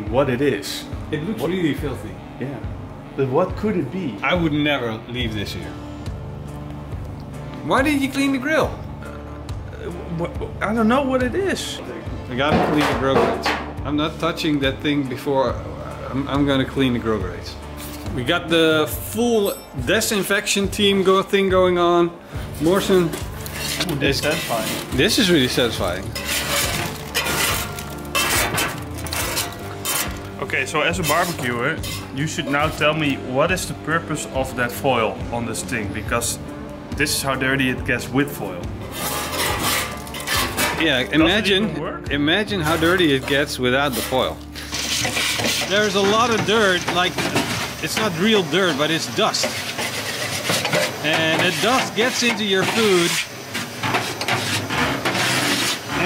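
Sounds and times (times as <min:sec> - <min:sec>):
scraping grease off metal tray: 0:22.8 - 0:30.3, 0:31.0 - 0:32.8, 0:38.9 - 0:40.8, 0:42.7 - 0:56.0.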